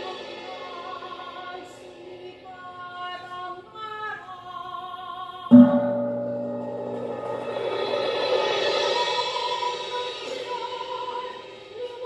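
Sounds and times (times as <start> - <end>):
loud low struck note: 5.5 - 8.2.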